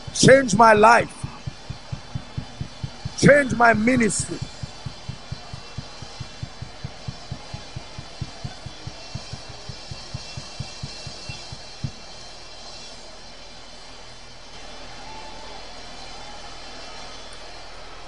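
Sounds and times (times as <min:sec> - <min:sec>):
bass drum thumps: 0:01.1 - 0:12.0.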